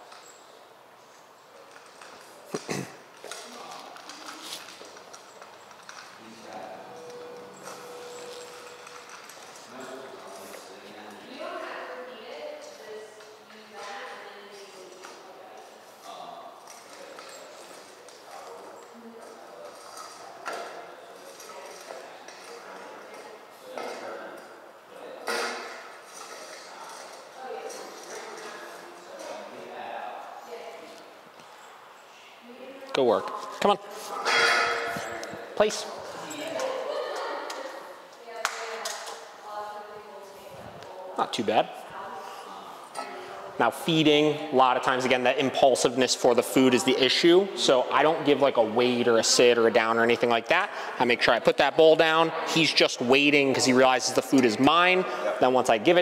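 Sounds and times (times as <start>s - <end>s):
metal dog bowl clinking: 5.1s - 10.4s, 34.2s - 35.4s.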